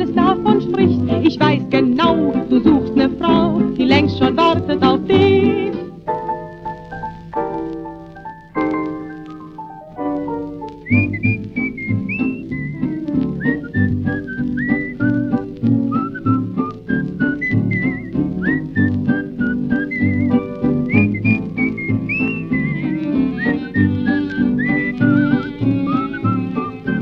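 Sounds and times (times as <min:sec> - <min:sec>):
woman whistling a melody: 0:10.8 - 0:15.2, 0:15.9 - 0:27.0.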